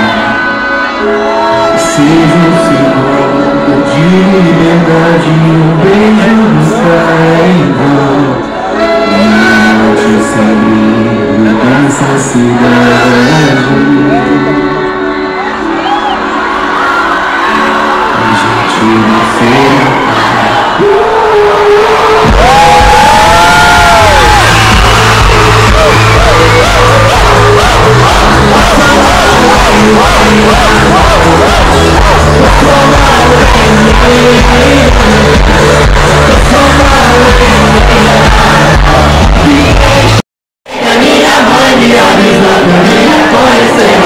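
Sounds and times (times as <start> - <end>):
fans screaming and cheering: 0.0 - 44.0
live pop concert music: 0.0 - 44.0
heavy bass beat: 22.2 - 40.2.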